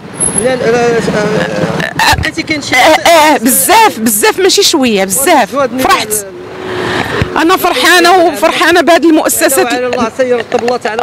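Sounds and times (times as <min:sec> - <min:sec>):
person speaking: 0:00.4 - 0:11.0.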